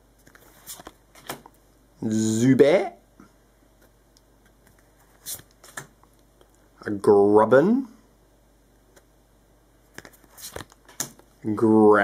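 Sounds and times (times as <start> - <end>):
cards sliding papery swishes: 0.2 - 1.0, 5.0 - 5.9, 10.0 - 10.8.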